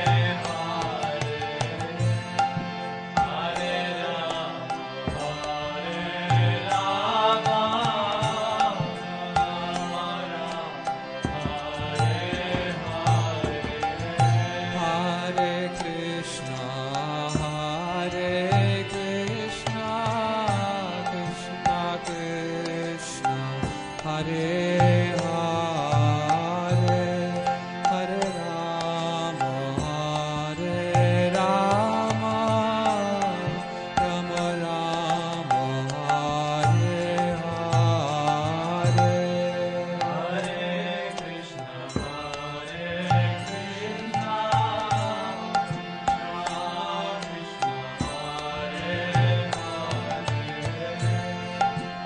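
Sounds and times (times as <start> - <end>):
devotional chanting: 0.0 - 52.0.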